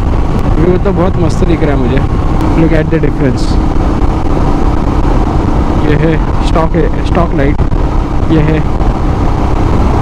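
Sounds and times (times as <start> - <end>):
motorcycle engine running: 0.0 - 10.0
wind rumble on microphone: 0.0 - 10.0.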